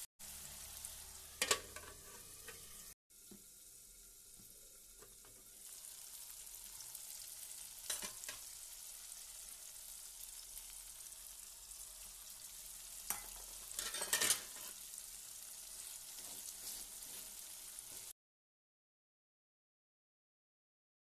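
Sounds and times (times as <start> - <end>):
oil sizzling in a pan: 0.0 - 18.2.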